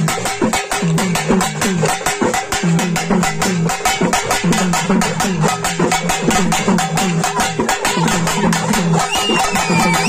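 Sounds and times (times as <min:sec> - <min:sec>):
rapid festival drumming: 0:00.0 - 0:10.0.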